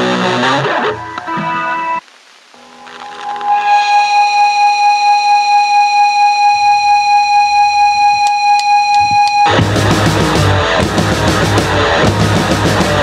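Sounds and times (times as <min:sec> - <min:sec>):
punk band playing: 0:00.0 - 0:02.0, 0:09.0 - 0:13.0
distorted guitar feedback: 0:00.0 - 0:13.0.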